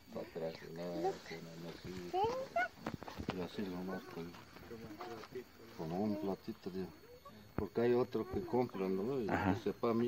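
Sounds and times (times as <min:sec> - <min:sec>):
man talking: 0:00.0 - 0:02.5, 0:03.2 - 0:07.0, 0:07.6 - 0:10.0.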